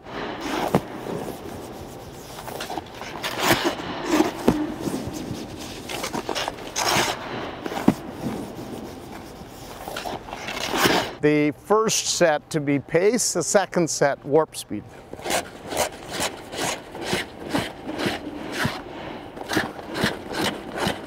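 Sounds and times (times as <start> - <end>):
leg pads scraping on ice: 0.4 - 11.2, 15.1 - 21.0.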